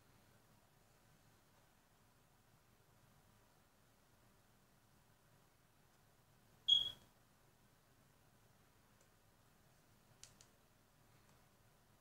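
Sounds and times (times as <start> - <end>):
high-pitched squeak: 6.7 - 7.0.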